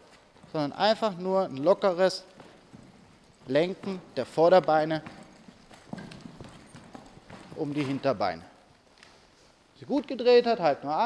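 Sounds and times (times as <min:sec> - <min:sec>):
hoofbeats on soft sand: 0:00.0 - 0:08.6.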